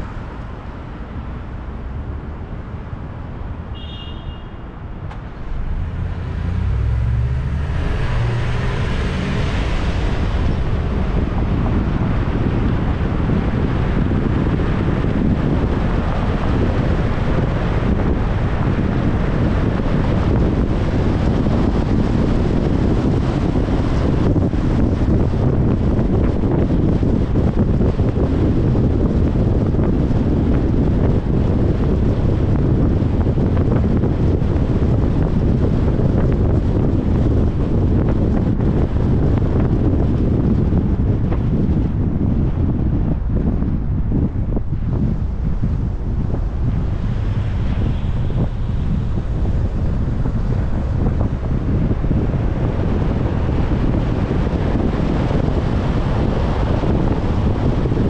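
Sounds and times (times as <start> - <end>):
road and tyre noise: 0.0 - 58.0
wind on microphone: 0.0 - 58.0
car pulling away: 5.0 - 42.9.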